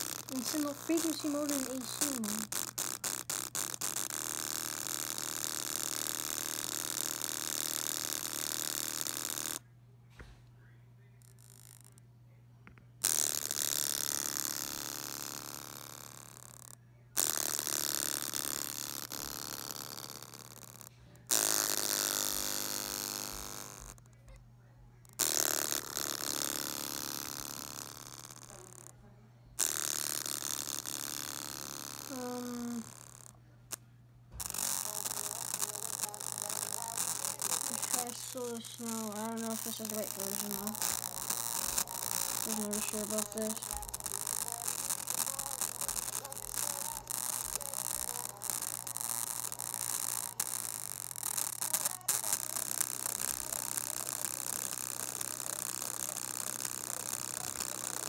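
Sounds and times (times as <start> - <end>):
steady low hum: 27.5 - 29.6, 32.1 - 50.6
distorted loudspeaker buzzing: 34.4 - 58.0.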